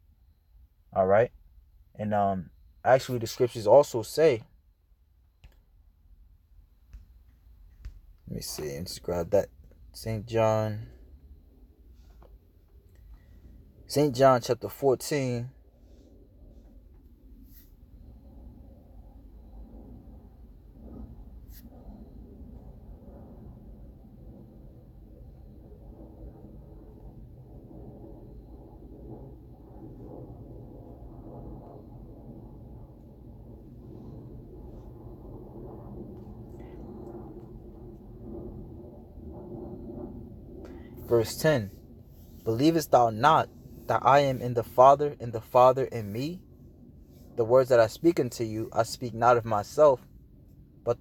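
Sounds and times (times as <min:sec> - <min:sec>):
low background rumble: 0:00.0 - 0:51.0.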